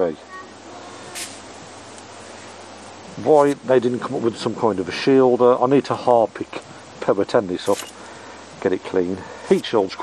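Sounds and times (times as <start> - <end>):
breathy hiss: 0.6 - 5.2, 5.9 - 10.0.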